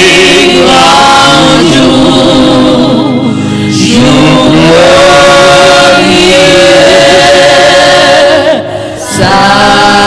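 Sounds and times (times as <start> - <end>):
man singing gospel into microphone: 0.0 - 10.0.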